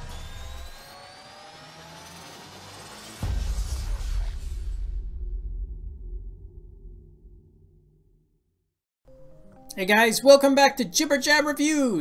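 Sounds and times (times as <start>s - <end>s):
whirring riser: 0.0s - 5.1s
low rumble: 3.2s - 8.5s.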